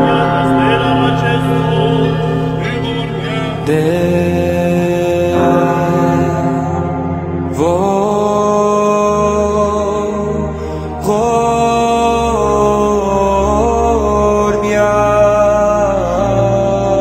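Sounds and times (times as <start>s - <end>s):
slow sacred chant: 0.0s - 17.0s
steady low drone: 0.0s - 17.0s.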